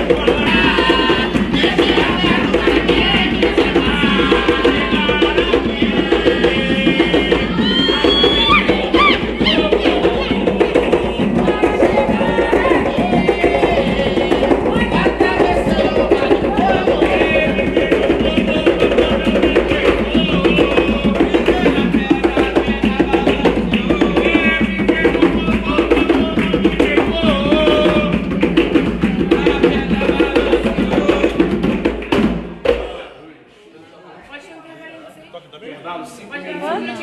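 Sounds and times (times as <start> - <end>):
hand drums beating fast rhythm: 0.0 - 33.0
group singing a chant: 0.0 - 33.6.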